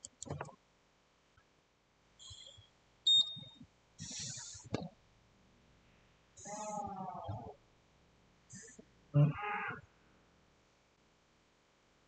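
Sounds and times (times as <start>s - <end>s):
high-pitched beep: 2.2s - 3.6s.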